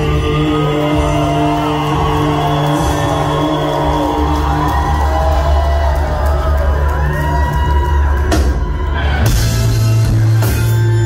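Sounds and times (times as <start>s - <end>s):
low drone and bass: 0.0s - 11.0s.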